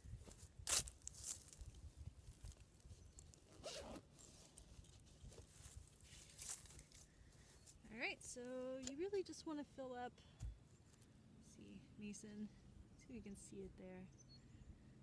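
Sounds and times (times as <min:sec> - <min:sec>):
wind rumble on microphone: 0:00.0 - 0:03.0
footsteps in dry grass: 0:00.0 - 0:03.5, 0:04.2 - 0:07.8.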